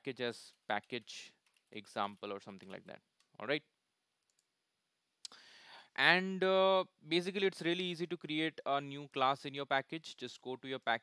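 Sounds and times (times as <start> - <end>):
soft in-breath: 5.3 - 6.0.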